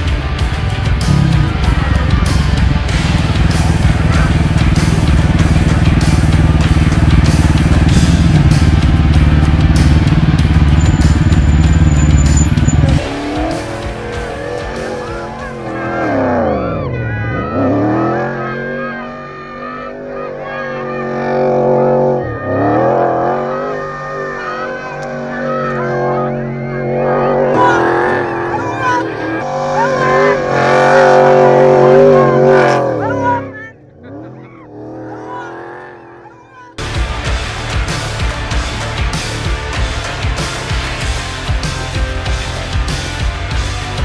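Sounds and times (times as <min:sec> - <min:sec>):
loud music with steady beat: 0:00.0 - 0:11.9, 0:12.7 - 0:16.5, 0:36.8 - 0:44.0
rally car engine revving: 0:00.0 - 0:44.0.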